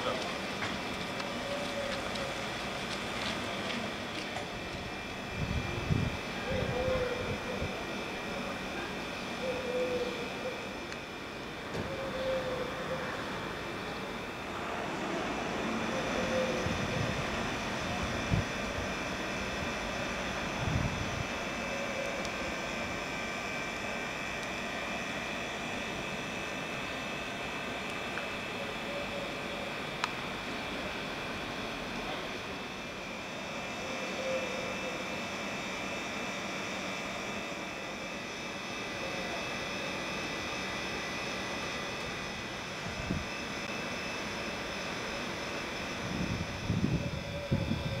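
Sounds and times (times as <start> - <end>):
construction machinery running: 0.0 - 48.0
faint distant voices: 38.8 - 40.0.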